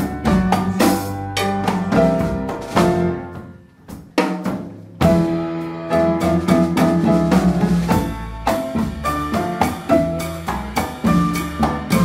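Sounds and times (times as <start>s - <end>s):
electric bass: 0.0s - 3.6s, 4.9s - 12.0s
congas: 0.0s - 12.0s
drum kit: 0.0s - 12.0s
jazz band playing: 0.0s - 12.0s.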